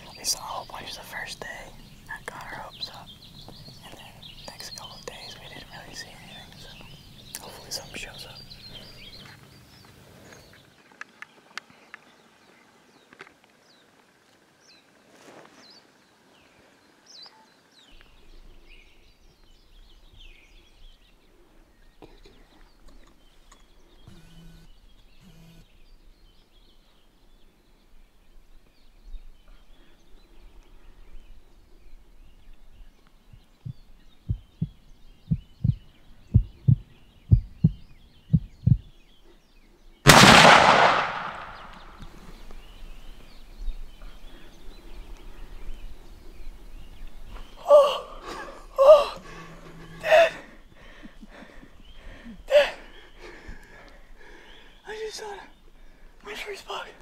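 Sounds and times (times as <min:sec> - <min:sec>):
faint birds chirping: 0:00.0 - 0:57.0
low thumps: 0:33.6 - 0:38.9
rifle shot with echo: 0:40.1 - 0:42.1.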